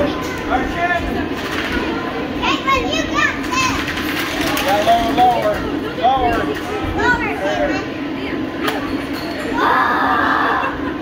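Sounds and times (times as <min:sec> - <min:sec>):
crowd hubbub: 0:00.0 - 0:11.0
child speaking: 0:02.4 - 0:03.9.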